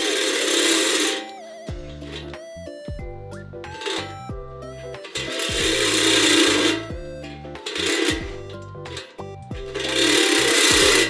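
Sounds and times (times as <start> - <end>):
power grinder grinding metal: 0.0 - 1.3, 5.0 - 11.0
synth background music: 0.0 - 11.0.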